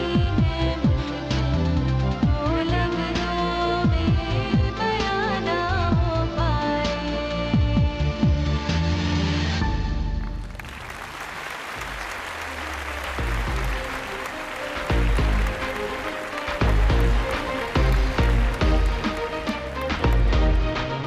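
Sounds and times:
audience applause: 0:10.4 - 0:21.0
amplified music with heavy beat: 0:13.2 - 0:21.0.

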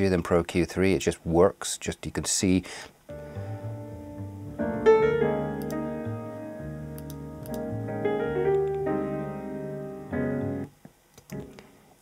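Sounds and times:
low bass line: 0:03.1 - 0:10.7
piano chords: 0:03.1 - 0:10.7.

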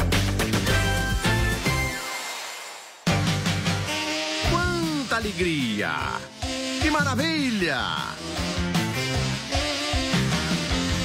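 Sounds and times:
upbeat theme music: 0:00.0 - 0:11.0.

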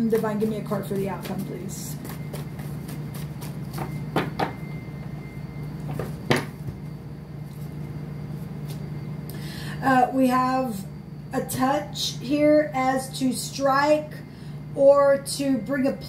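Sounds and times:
low hum: 0:00.0 - 0:16.0.

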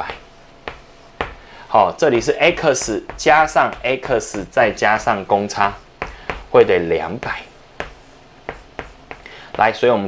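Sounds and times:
chalk scraping on blackboard: 0:00.0 - 0:01.4, 0:02.1 - 0:09.7
chalk tapping on blackboard: 0:00.0 - 0:09.8.

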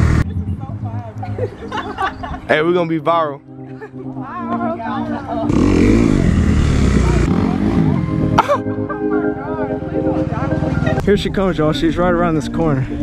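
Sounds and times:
background music: 0:00.0 - 0:13.0
dirt bike engine running: 0:05.5 - 0:08.0.

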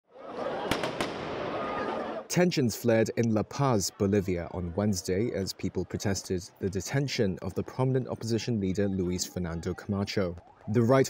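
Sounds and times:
crowd din: 0:00.1 - 0:11.0
firecrackers banging: 0:00.6 - 0:01.7.

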